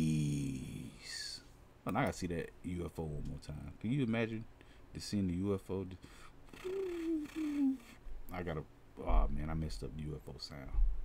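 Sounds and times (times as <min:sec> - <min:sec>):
man vocally imitating a ufo: 0:00.0 - 0:01.0, 0:06.5 - 0:08.0.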